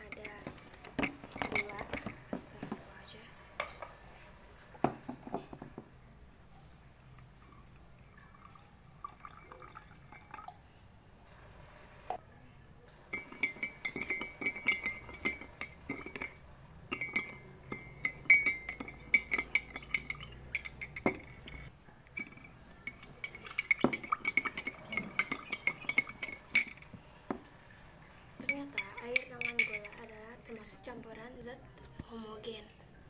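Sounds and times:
metal spoon clinking in glass mug: 0.0s - 2.7s, 13.1s - 27.4s, 28.4s - 30.1s.

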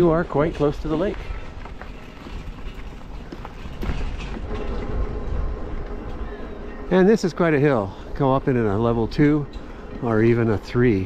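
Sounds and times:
wind rumble on microphone: 0.1s - 6.9s
tyre noise: 0.4s - 4.5s.

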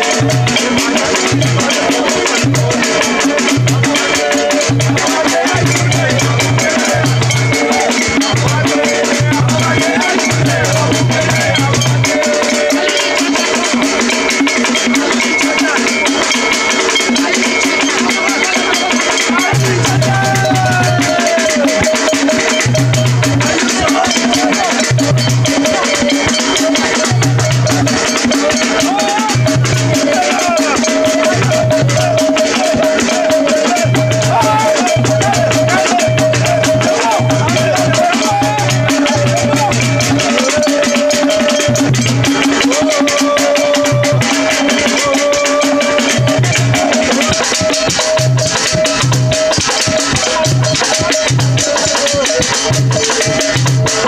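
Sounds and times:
fast dense percussion: 0.0s - 54.0s
group of voices singing: 0.0s - 54.0s.

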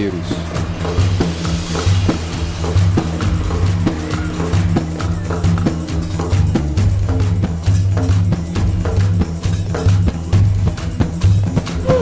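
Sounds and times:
bass line: 0.0s - 12.0s
percussion beat: 0.0s - 12.0s.

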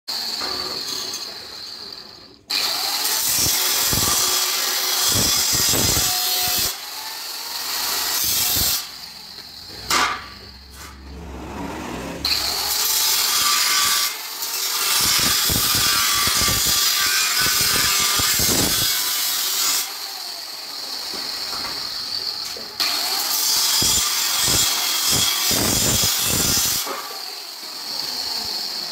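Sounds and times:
angle grinder cutting steel: 0.1s - 28.9s.

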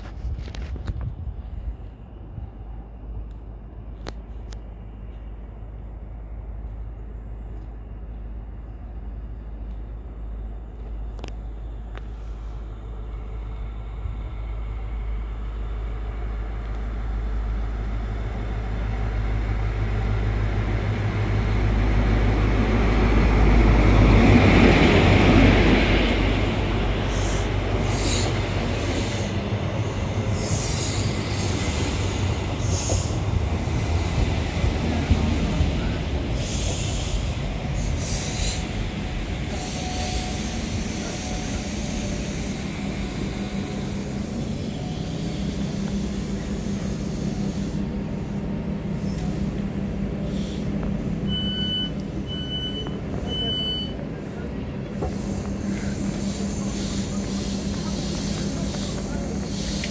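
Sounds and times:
diesel train engine rumble: 0.0s - 59.9s
train wheels squealing: 26.9s - 47.8s.

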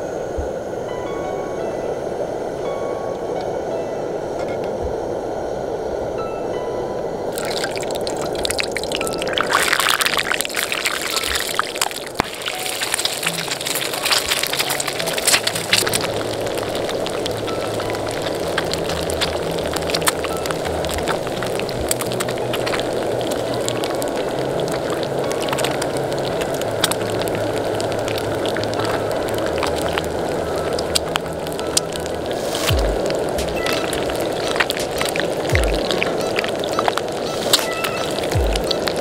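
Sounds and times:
oil bubbling and popping: 7.3s - 39.0s
background music with bass line: 35.5s - 36.4s, 37.6s - 39.0s.

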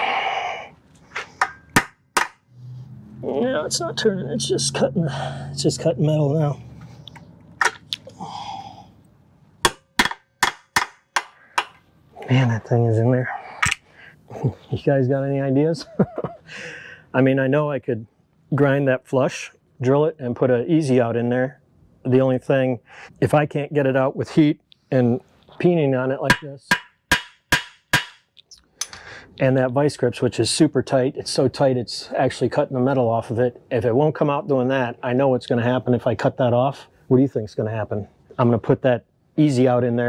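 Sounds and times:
hammer striking metal bolt: 1.4s - 2.4s, 9.6s - 11.8s, 26.3s - 28.3s.

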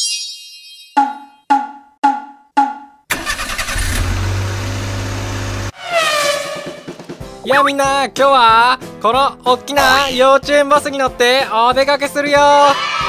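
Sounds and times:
car engine rumble: 3.1s - 5.7s
falling whistle-like tone: 5.7s - 7.0s.

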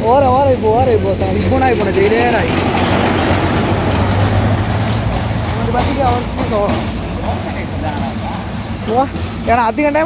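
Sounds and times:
crowd hubbub: 0.0s - 10.0s
vehicle engine humming: 0.0s - 10.0s.

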